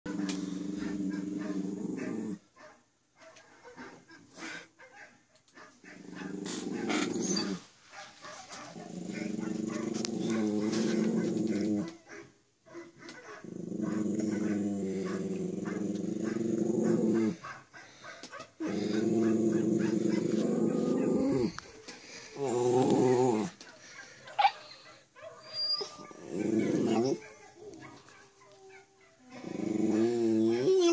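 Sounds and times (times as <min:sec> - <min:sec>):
small dog howling: 0:25.4 - 0:29.1.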